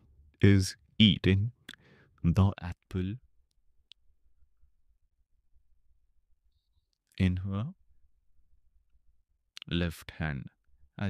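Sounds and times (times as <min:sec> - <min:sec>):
person speaking: 0:00.4 - 0:03.2.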